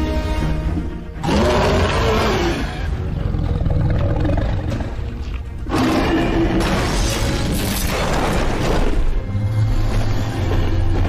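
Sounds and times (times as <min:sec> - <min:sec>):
dragon roar: 0:01.2 - 0:06.6.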